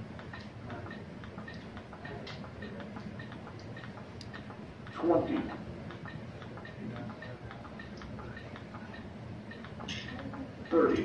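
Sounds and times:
cpr manikin clicking: 0.0s - 11.0s.

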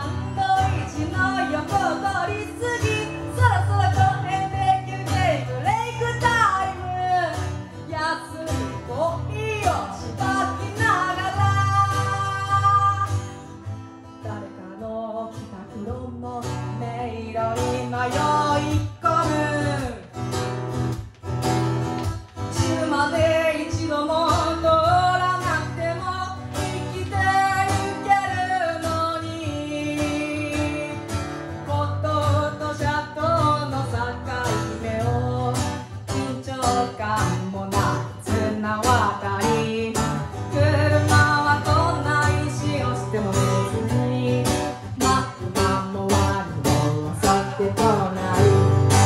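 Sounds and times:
woman singing: 0.0s - 20.6s, 22.3s - 49.0s
strummed acoustic guitar: 0.0s - 49.0s.

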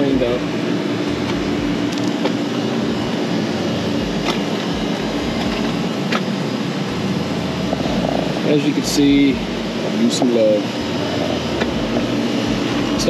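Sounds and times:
mechanical drone with hum: 0.0s - 13.0s.

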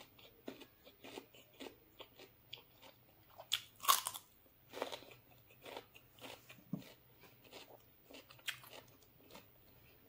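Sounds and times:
crunching raw vegetable: 0.0s - 10.0s.

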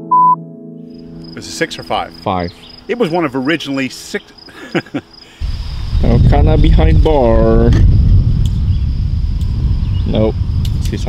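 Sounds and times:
wind buffeting microphone: 5.4s - 11.0s.

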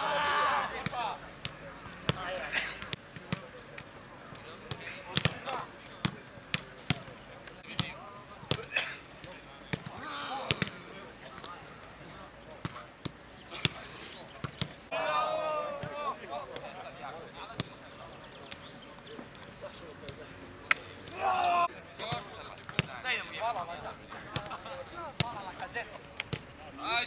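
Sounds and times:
players shouting: 0.0s - 3.5s, 9.8s - 12.8s, 13.4s - 18.0s, 19.7s - 22.4s, 26.6s - 27.0s
footballs being kicked: 4.3s - 8.7s, 22.0s - 23.0s.

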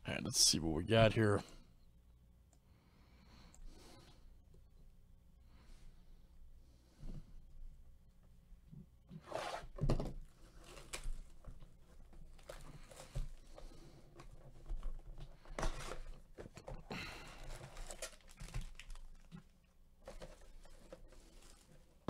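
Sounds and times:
foil packs crinkling: 10.5s - 13.7s, 14.6s - 22.0s
foil tearing: 17.2s - 19.3s.

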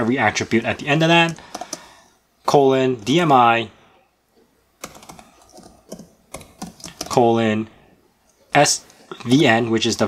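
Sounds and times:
keyboard keystrokes: 1.2s - 1.9s, 4.8s - 7.2s.

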